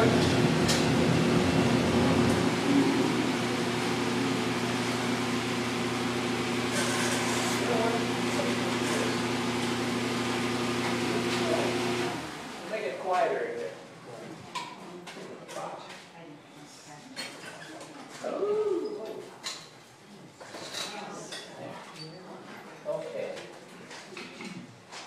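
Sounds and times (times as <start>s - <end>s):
furnace burner and blower: 0.0s - 13.2s.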